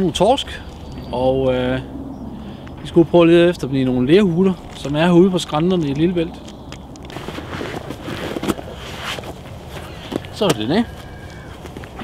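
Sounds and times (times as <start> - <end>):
wetsuit rubbing and squeaking: 7.1 - 12.0.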